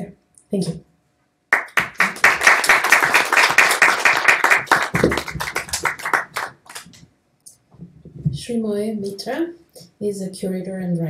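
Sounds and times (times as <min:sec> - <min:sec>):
audience applauding: 0:01.5 - 0:07.0.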